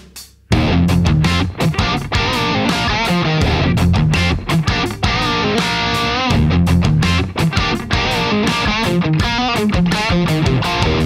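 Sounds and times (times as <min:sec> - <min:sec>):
overdriven electric guitar: 0:00.5 - 0:11.0.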